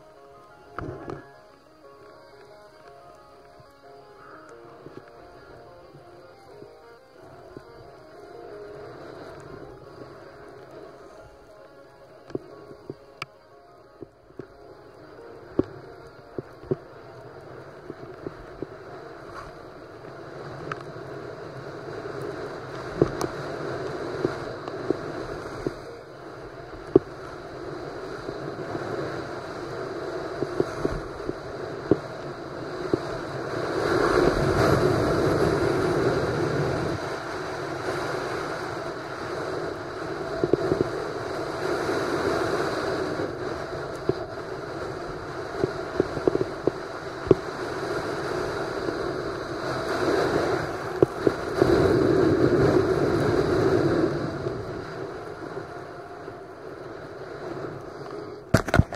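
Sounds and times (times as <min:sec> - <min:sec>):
skis sliding over snow: 0:00.0 - 0:58.9
wind on microphone: 0:14.0 - 0:58.9.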